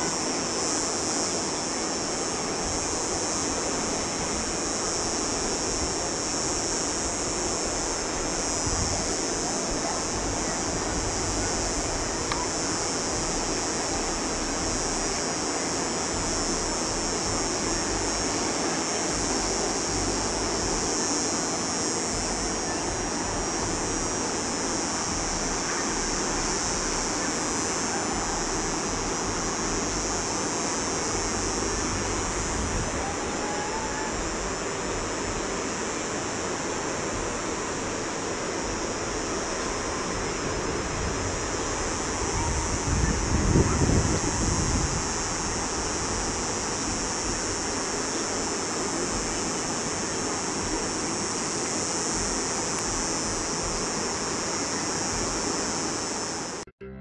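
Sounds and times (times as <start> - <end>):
wind in vegetation: 0.0 - 56.7
wind buffeting microphone: 39.9 - 48.0.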